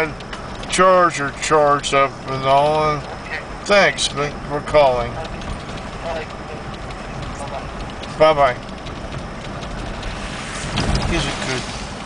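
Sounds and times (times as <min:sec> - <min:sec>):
low rumble: 0:00.0 - 0:12.0
tyres hissing on wet pavement: 0:10.0 - 0:12.0.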